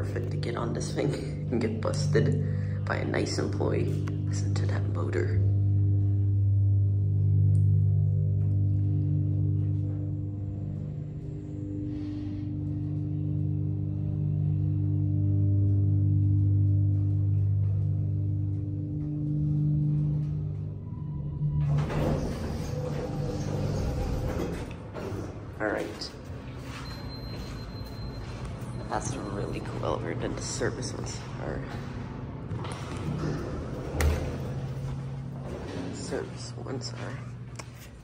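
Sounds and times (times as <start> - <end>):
elevator pump motor humming: 0.0 - 38.0
elevator doors sliding open: 20.0 - 37.0.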